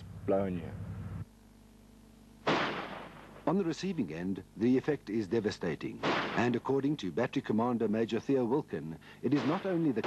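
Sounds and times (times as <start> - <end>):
howitzer firing blast: 2.4 - 3.5, 6.0 - 6.6.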